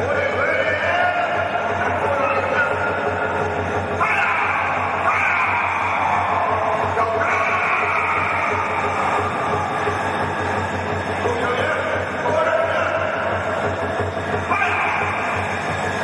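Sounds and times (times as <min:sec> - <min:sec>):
drumming: 0:00.0 - 0:16.0.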